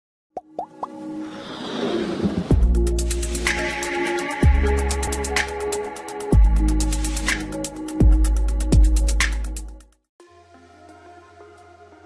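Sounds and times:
pops with rising blip: 0.4s - 1.0s
musical riser: 1.0s - 7.3s.

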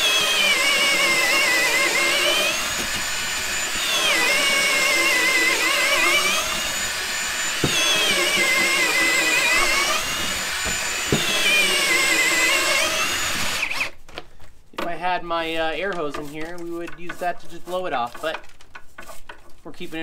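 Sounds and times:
cordless drill boring into wood: 0.0s - 14.0s.

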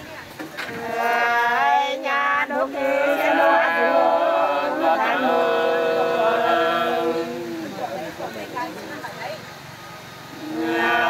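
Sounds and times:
unaccompanied folk singing: 0.0s - 9.0s, 10.1s - 11.0s.

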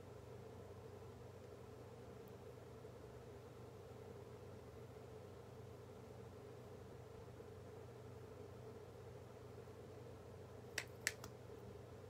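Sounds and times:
faint room hum: 0.0s - 12.0s
sharp click: 10.8s - 11.3s.

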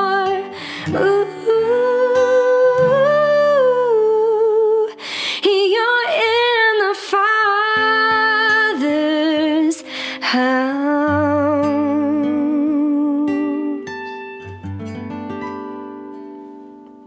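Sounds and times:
acoustic guitar: 0.0s - 17.0s.

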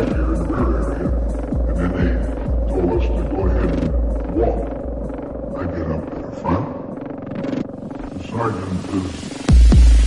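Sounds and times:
growling processed voice: 0.0s - 7.0s
deep bass pulse: 0.0s - 8.3s
dark minimal techno: 0.0s - 10.0s.

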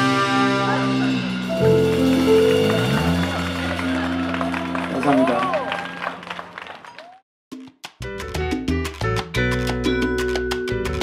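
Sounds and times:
brass-led band playing: 0.0s - 5.6s.

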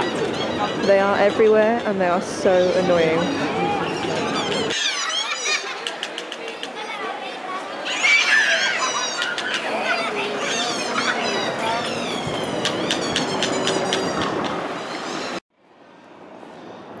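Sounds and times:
crowd chatter with children: 0.0s - 15.4s
faint street noise: 0.0s - 17.0s.

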